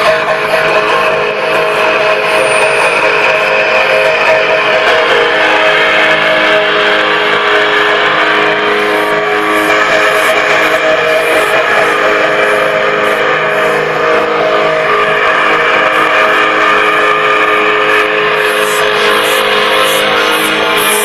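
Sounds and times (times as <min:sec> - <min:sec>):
distorted electric guitar and bass: 0:00.0 - 0:21.0.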